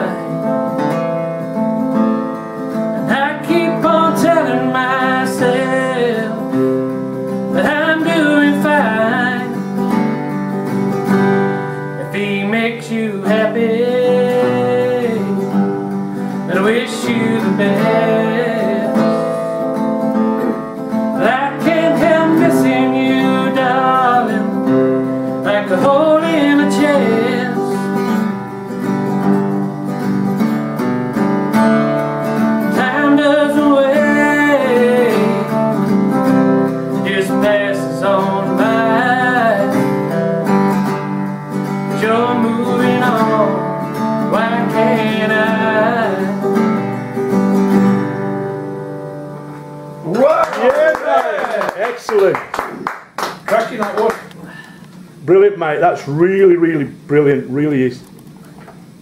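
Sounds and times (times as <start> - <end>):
man singing: 0.0 - 0.6, 3.0 - 6.8, 7.5 - 9.7, 12.0 - 15.7, 16.4 - 19.5, 21.2 - 28.2, 32.6 - 36.0, 36.9 - 40.1, 41.9 - 46.7
acoustic guitar strumming: 0.0 - 57.5.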